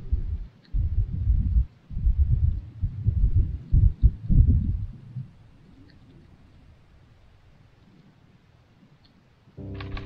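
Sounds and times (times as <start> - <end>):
wind buffeting microphone: 0.0 - 8.9.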